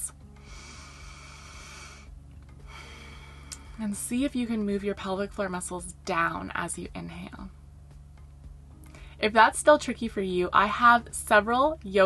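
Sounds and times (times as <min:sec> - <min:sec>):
deep breaths through nose: 0:00.3 - 0:03.8.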